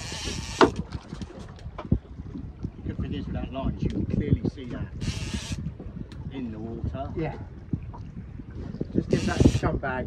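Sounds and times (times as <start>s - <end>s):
sea rumble: 0.0s - 10.0s
steady wind: 0.0s - 10.0s.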